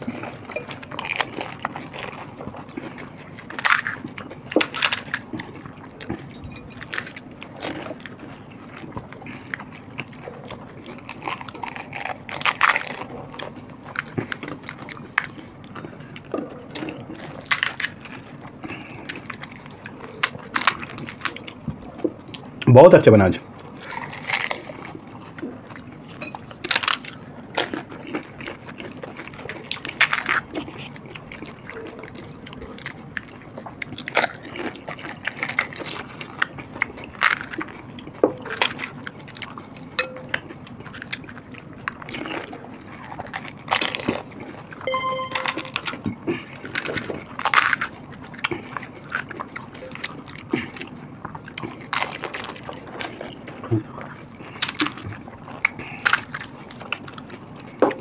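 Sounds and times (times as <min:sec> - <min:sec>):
chewing: 0:00.0 - 0:22.7, 0:23.5 - 0:44.6, 0:47.5 - 0:57.8
short beep: 0:44.9 - 0:46.0.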